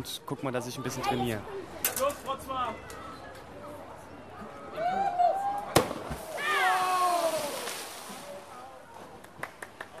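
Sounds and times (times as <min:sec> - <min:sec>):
drawn-out shouts: 0:06.3 - 0:07.7
body slapping water: 0:06.8 - 0:08.3.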